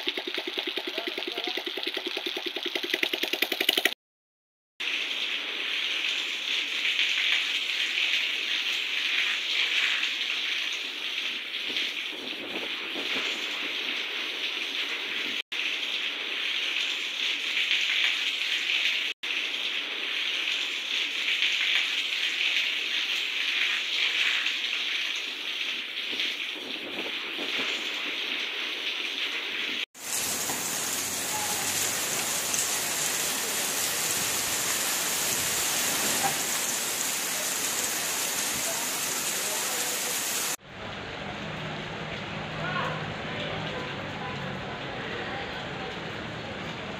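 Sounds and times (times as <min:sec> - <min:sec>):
heavy rain on roofs and ground: 0:04.8 - 0:46.9.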